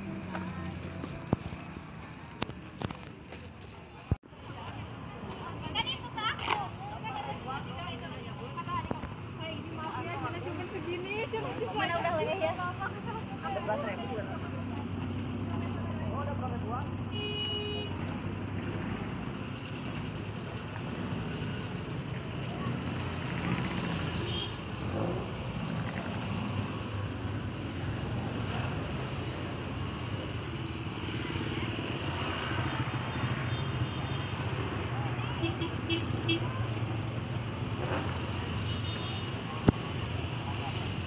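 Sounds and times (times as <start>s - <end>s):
motorcycle and minibus engines: 0.0s - 41.0s.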